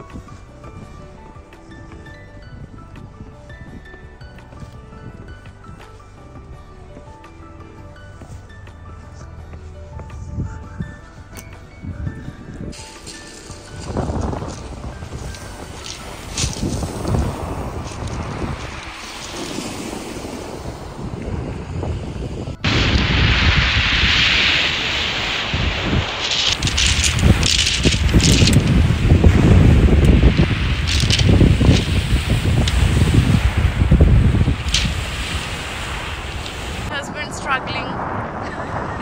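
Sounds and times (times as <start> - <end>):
wind buffeting microphone: 0.0 - 39.0
waves washing over shingle: 12.5 - 39.0.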